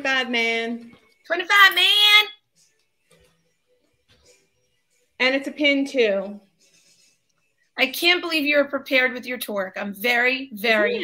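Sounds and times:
faint room sounds: 0.0 - 11.0.

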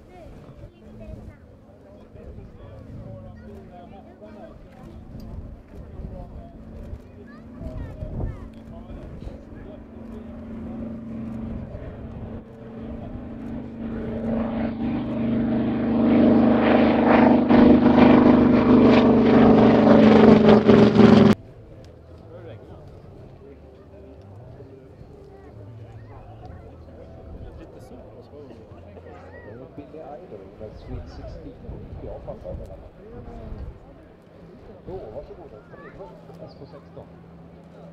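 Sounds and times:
propeller plane flying past: 0.0 - 37.9.

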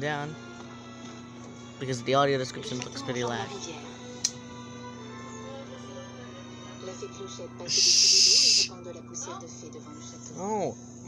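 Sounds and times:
background music: 0.0 - 10.5
person hushing: 7.7 - 8.7.

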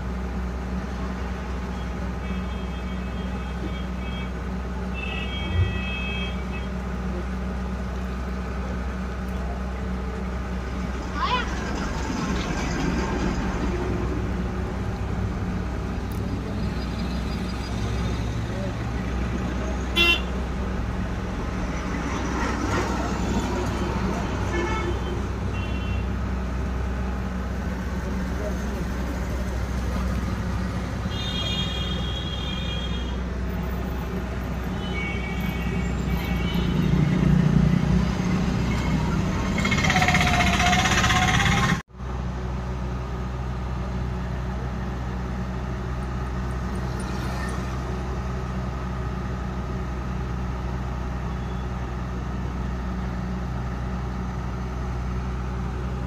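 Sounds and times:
heavy truck engine running: 0.0 - 56.0
street traffic: 0.0 - 56.0.

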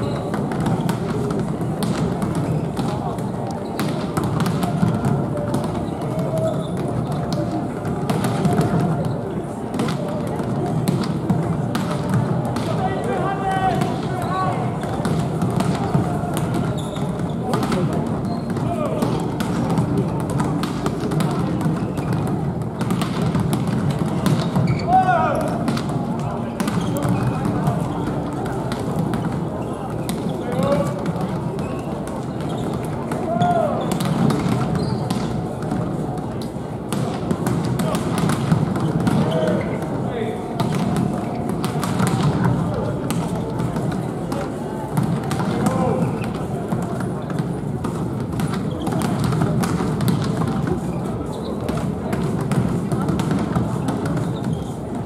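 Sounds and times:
volleyballs being hit: 0.0 - 54.7
crowd murmur: 0.0 - 55.0.

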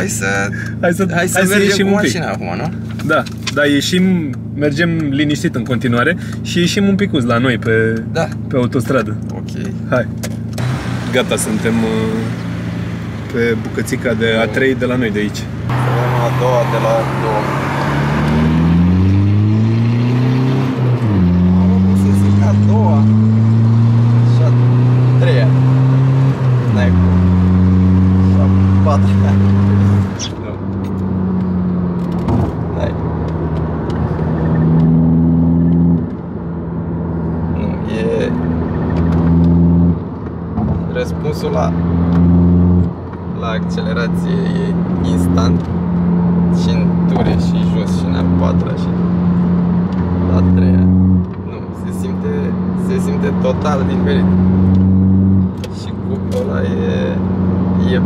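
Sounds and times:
car engine accelerating through gears: 8.0 - 58.0.

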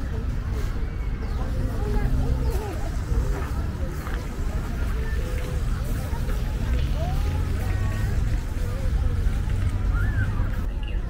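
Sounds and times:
distant people talking: 0.0 - 11.0.

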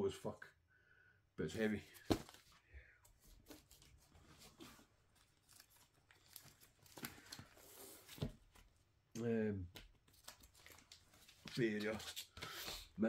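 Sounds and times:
packaging rustling and crinkling: 3.2 - 8.8.

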